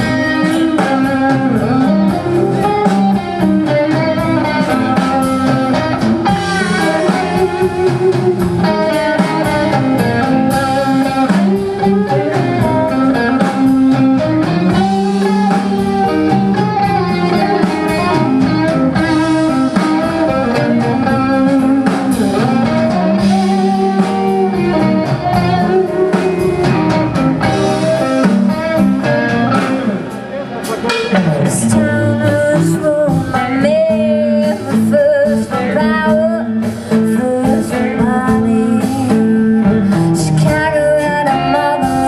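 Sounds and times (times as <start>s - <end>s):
blues-rock band playing: 0.0s - 42.0s
electric guitar bent notes: 0.0s - 42.0s.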